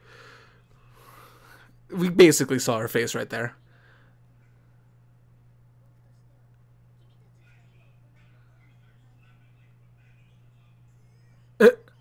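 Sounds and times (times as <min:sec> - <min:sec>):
faint background dialogue: 0:03.5 - 0:12.0
man's hiccup-like vocal burst: 0:11.6 - 0:11.9.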